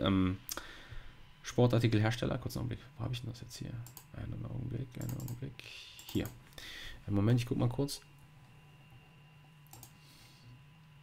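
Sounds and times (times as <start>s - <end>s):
steady low hum: 0.0s - 11.0s
soft clicks: 3.8s - 4.1s, 5.0s - 5.4s, 9.7s - 10.0s.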